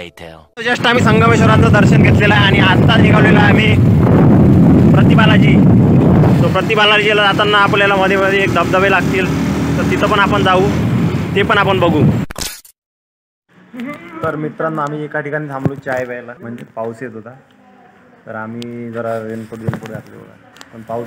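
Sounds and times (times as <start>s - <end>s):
man talking: 0.0s - 3.8s
low outdoor rumble: 0.6s - 12.0s.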